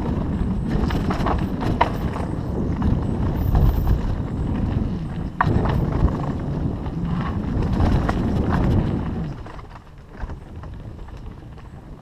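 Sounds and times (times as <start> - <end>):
bike rattling and clicking: 0.0 - 12.0
tyres rumbling on dirt: 0.0 - 12.0.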